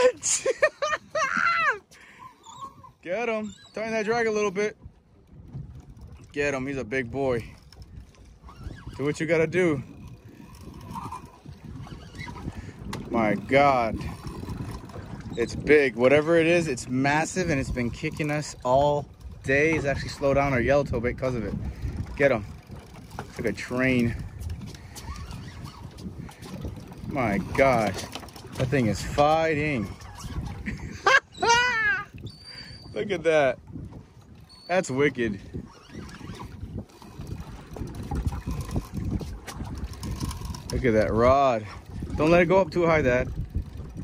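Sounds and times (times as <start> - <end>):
person laughing: 0.0 - 1.8, 30.6 - 32.1
low boat rumble: 0.0 - 44.0.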